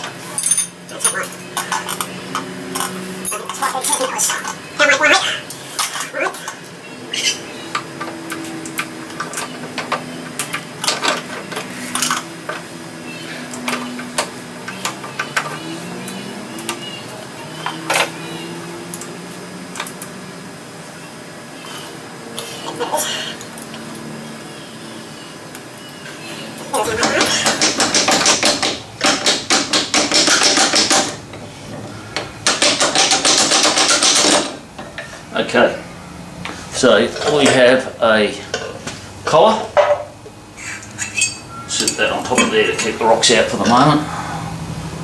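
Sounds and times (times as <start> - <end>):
steel machine parts clinking: 0.3 - 2.1.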